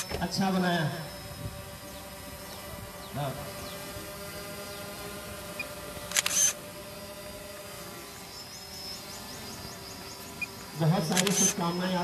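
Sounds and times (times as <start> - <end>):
outdoor crowd background hum: 0.0 - 12.0
sharp click-like burst: 5.6 - 6.6, 11.1 - 11.6.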